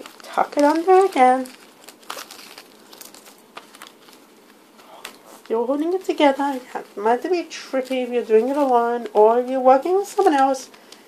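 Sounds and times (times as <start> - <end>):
small sharp paper crackles: 0.0 - 11.0
wrapping paper crinkling: 0.0 - 11.0.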